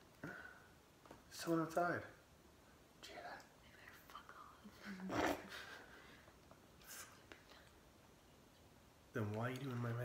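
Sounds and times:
faint whispering: 3.0s - 5.4s.

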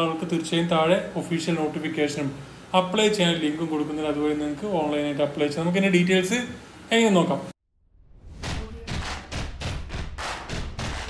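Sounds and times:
rapid percussive hits: 8.2s - 11.0s.

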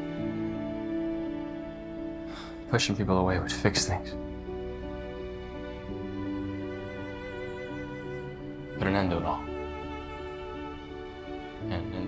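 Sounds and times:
sad violin and cello music: 0.0s - 12.0s
voice: 2.7s - 4.2s, 8.8s - 9.5s, 11.7s - 12.0s.

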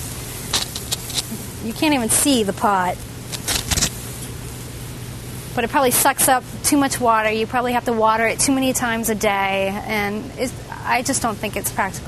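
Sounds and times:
steady low hum: 0.0s - 12.0s
houseplant leaves rustling: 0.3s - 2.5s, 3.3s - 4.0s
brief crackles: 3.3s - 4.0s.

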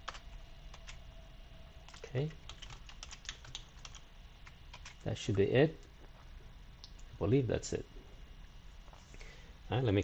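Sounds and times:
computer keyboard typing: 0.0s - 1.1s, 1.8s - 5.3s.

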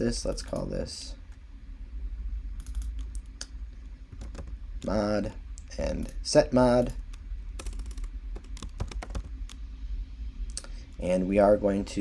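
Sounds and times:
faint low hum: 0.0s - 12.0s
keyboard keys clicking: 4.2s - 4.9s, 7.6s - 9.3s.

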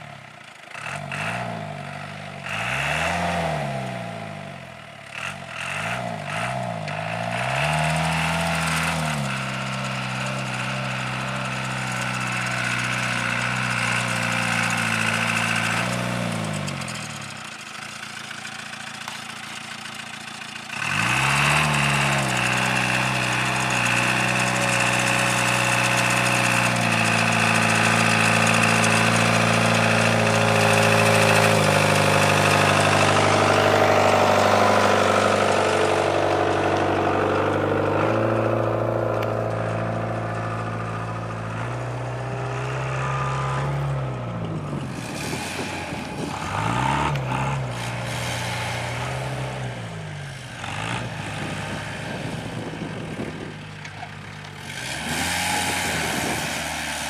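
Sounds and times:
off-road vehicle engine revving: 0.0s - 57.0s.

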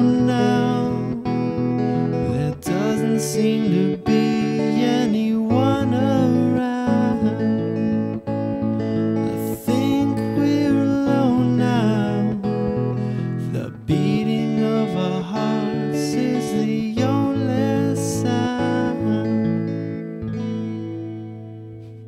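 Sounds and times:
man singing softly: 0.0s - 8.0s, 9.3s - 19.9s
electric guitar chords: 0.0s - 22.0s.

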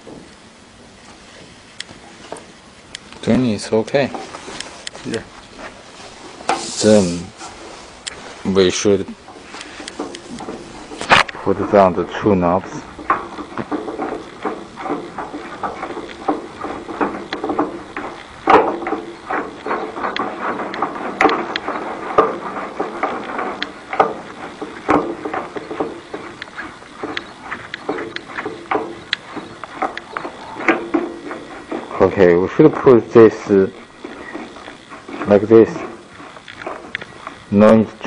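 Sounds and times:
laminating machine clicks and knocks: 9.3s - 38.0s.

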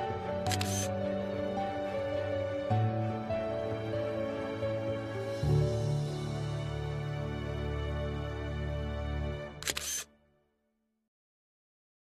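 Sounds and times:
background music sustained chord: 0.0s - 9.6s
camera shutter clicks: 0.4s - 0.9s, 9.6s - 10.1s.

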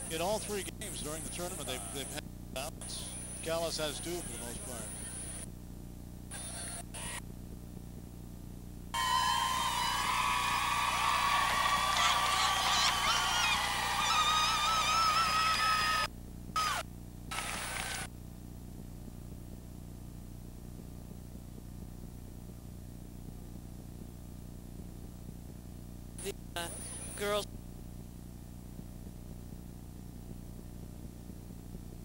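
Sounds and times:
steady low hum: 0.0s - 32.0s
crowd screaming and cheering: 9.0s - 16.8s.

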